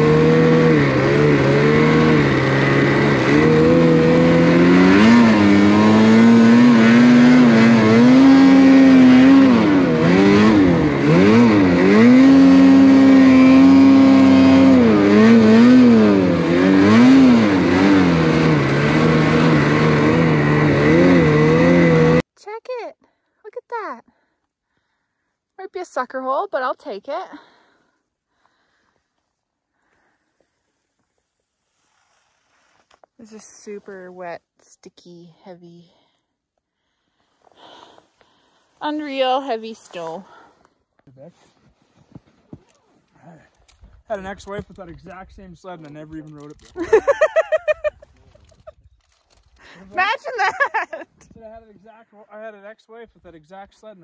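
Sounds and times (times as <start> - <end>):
snowmobile engine revving: 0.0 - 22.2, 45.8 - 48.7, 49.6 - 53.4
track noise: 0.0 - 22.2.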